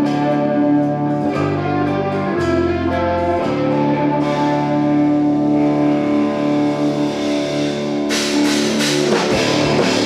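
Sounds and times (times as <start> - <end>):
overdriven electric guitar chords: 0.0 - 10.0
cymbals and drums crashing: 7.4 - 10.0.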